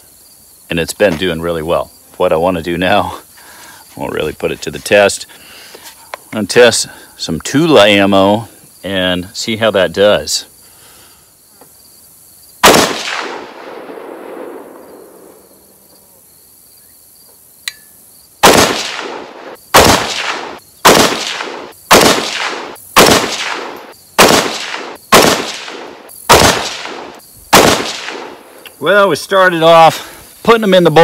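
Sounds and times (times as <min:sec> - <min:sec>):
insects trilling: 0:00.0 - 0:31.0
rifle shots echoing: 0:12.6 - 0:15.7, 0:18.4 - 0:28.6.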